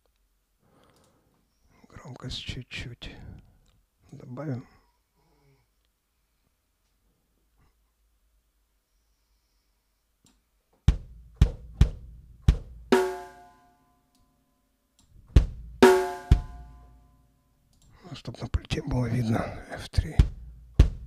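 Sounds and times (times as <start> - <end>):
drum hits: 10.9 - 13.5, 15.3 - 16.8, 20.1 - 21.0
ringing cymbal crash: 13.0 - 13.6, 15.8 - 16.8.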